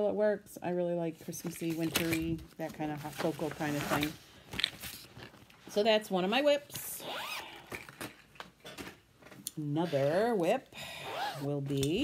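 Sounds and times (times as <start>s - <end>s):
zipper pulled open: 7.0s - 8.0s, 11.0s - 11.6s.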